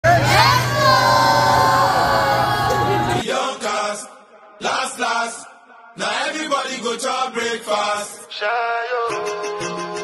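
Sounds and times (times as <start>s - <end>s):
children shouting together: 0.1s - 3.2s.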